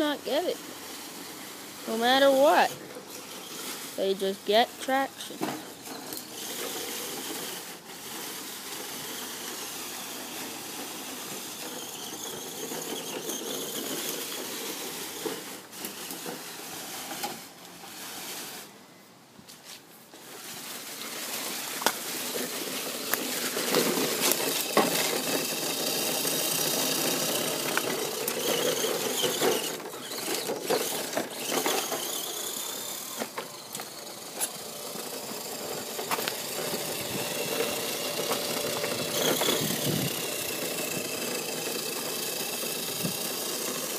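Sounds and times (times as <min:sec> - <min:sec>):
electric motor and gear whine: 0:00.0 - 0:18.8, 0:20.4 - 0:43.9
tires rustling through leaves: 0:00.0 - 0:18.8, 0:19.5 - 0:43.9.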